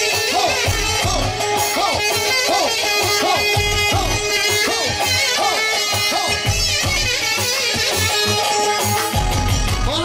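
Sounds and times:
live band music with saxophone: 0.0s - 10.0s
steady bass beat: 0.6s - 2.1s, 3.2s - 5.2s.

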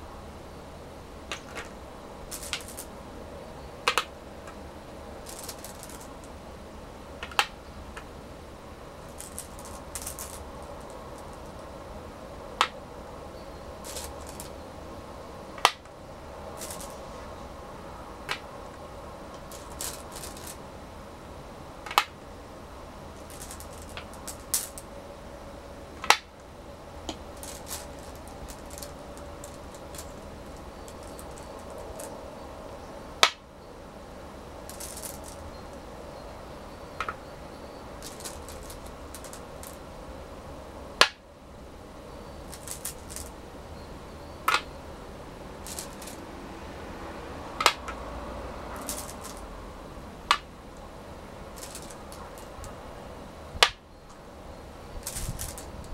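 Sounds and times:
faint room hum: 0.0s - 55.9s
stones clacking on wooden board: 1.3s - 2.9s, 3.9s - 4.1s, 5.2s - 6.3s, 7.2s - 8.1s, 9.0s - 11.6s, 13.8s - 14.6s, 16.6s - 17.0s, 18.3s - 18.5s, 19.4s - 20.6s, 21.8s - 22.2s, 23.2s - 24.8s, 26.0s - 26.3s, 27.1s - 32.2s, 34.7s - 35.4s, 37.0s - 37.2s, 38.0s - 39.8s, 42.4s - 43.3s, 44.5s - 44.7s, 45.6s - 46.2s, 47.6s - 48.0s, 48.7s - 49.5s, 51.6s - 52.7s, 55.0s - 55.9s.

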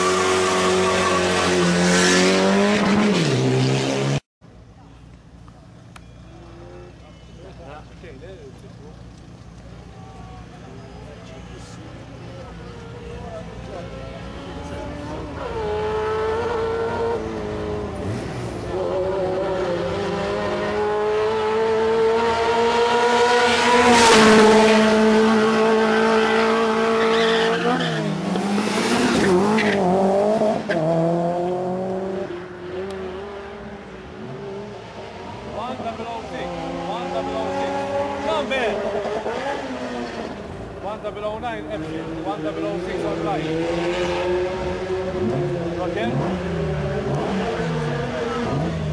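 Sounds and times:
car engine revving: 11.6s - 48.9s.

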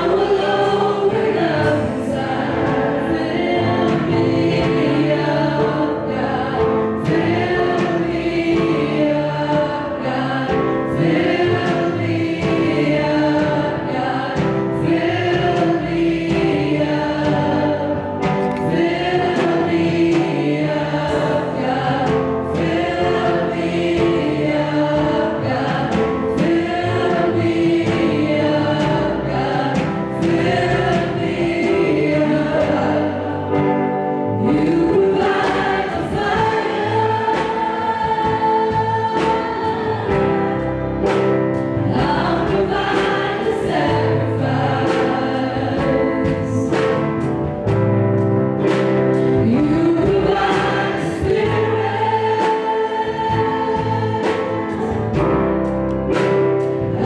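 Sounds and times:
church band with drums: 0.0s - 57.0s
gospel group singing: 0.0s - 57.0s.

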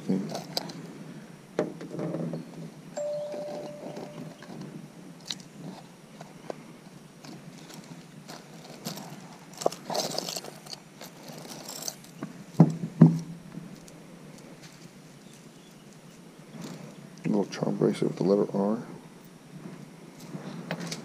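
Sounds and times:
short steady tone: 3.0s - 4.4s
jewelry chains and beads clinking: 3.0s - 4.6s, 8.3s - 12.1s.

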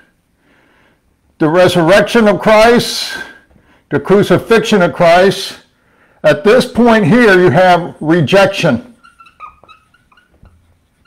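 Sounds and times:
marker squeaking on whiteboard: 6.6s - 11.0s.

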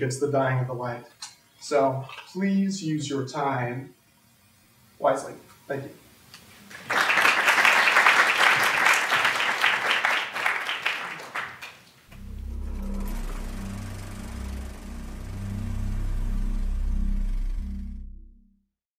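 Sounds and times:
audience applauding: 6.6s - 12.2s
low music with deep bass: 12.1s - 18.7s.

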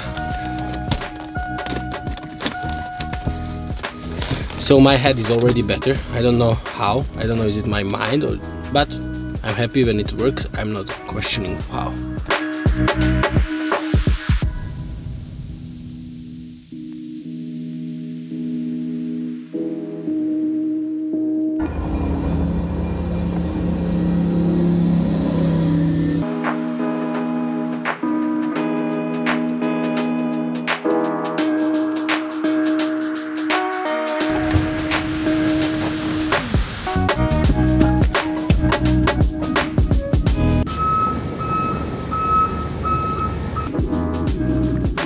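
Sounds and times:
music: 0.0s - 41.1s, 43.6s - 45.0s
low street and engine rumble: 21.6s - 26.2s, 34.3s - 45.0s
reversing alarm beeping: 21.6s - 26.2s, 40.7s - 43.8s
train rumbling past: 21.6s - 26.2s
steady low drone: 21.6s - 26.3s.

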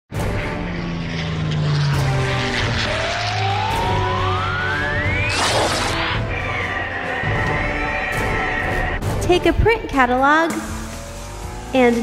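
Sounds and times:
propeller plane engine drone: 0.1s - 9.2s
background music: 0.1s - 12.0s
rising tone: 0.4s - 6.9s.

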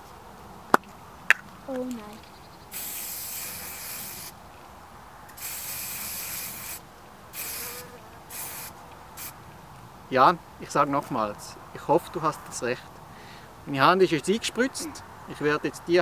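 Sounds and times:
spray hissing from can: 2.7s - 4.4s, 5.3s - 9.4s.

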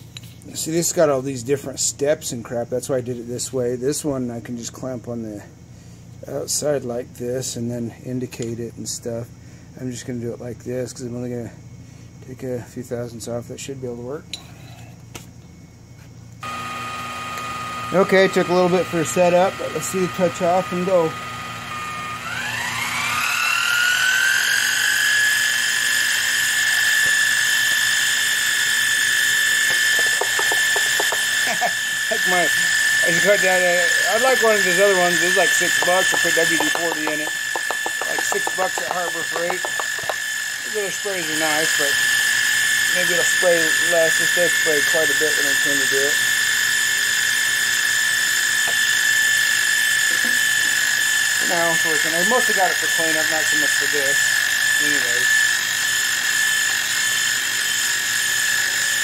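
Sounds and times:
milling machine spindle whining: 16.4s - 59.0s.

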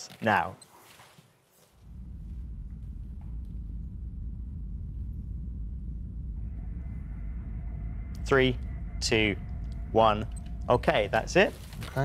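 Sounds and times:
steady low rumble: 1.7s - 12.0s
faint high steady tone: 5.9s - 12.0s.

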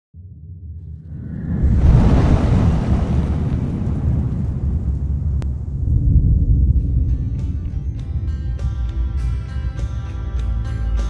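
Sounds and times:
deep rumble: 0.1s - 11.0s
fireball explosion whoosh: 0.8s - 7.9s.

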